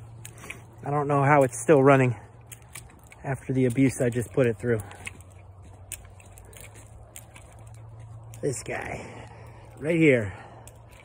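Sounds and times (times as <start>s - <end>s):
footsteps on muddy dirt: 0.0s - 11.0s
low steady hum: 0.0s - 11.0s
light clicks: 0.1s - 8.8s.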